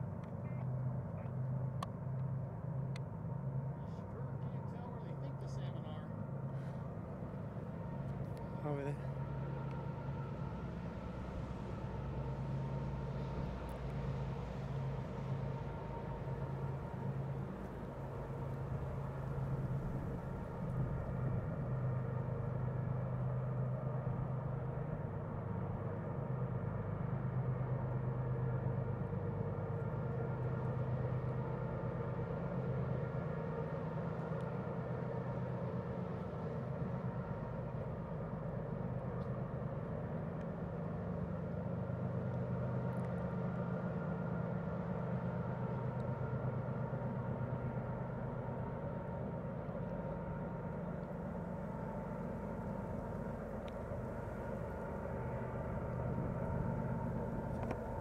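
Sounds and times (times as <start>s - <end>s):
distant locomotive engine drone: 0.0s - 58.0s.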